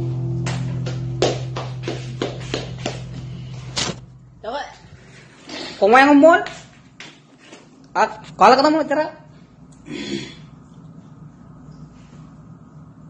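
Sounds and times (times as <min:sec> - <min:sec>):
acoustic guitar chord ringing: 0:00.0 - 0:04.4
sharp handclaps: 0:00.4 - 0:03.3.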